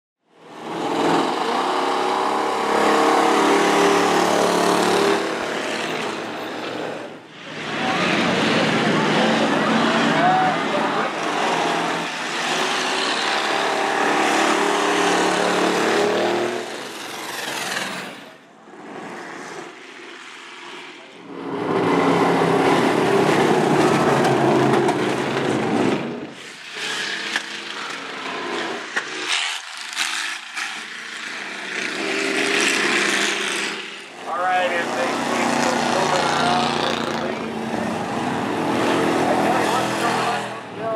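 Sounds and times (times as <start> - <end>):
car engines revving: 0.3 - 40.9.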